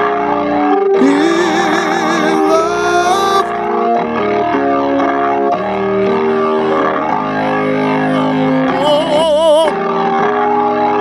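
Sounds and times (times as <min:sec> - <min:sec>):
keyboard playing organ-like chords: 0:00.0 - 0:11.0.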